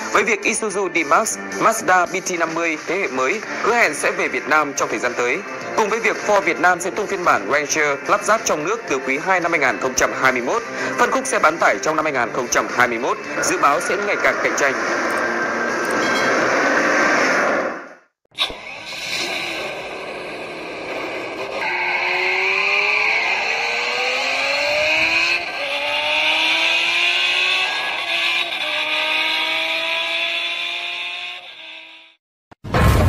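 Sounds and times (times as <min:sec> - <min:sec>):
car engine accelerating: 0:01.4 - 0:32.2
tyre squeal: 0:15.9 - 0:16.5.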